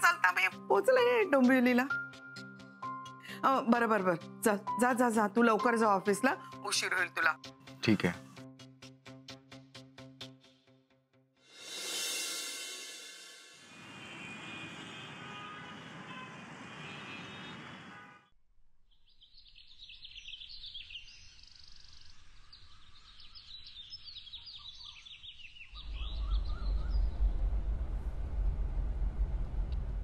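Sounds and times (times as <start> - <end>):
busy road traffic: 13.6 - 18.3
birds chirping: 19.1 - 27.4
car engine rumbling: 25.8 - 30.0.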